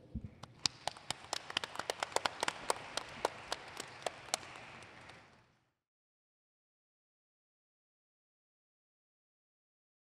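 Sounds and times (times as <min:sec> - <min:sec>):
sharp single hand claps: 0:00.4 - 0:05.4
audience applauding: 0:00.4 - 0:05.5.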